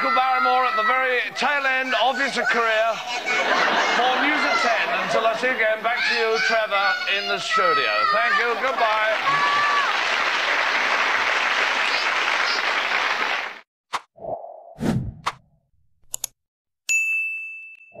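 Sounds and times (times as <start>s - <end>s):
audience applause: 8.3s - 13.6s
sound-effect clicks: 15.2s - 15.4s, 16.0s - 16.4s
bright ding: 16.9s - 18.0s.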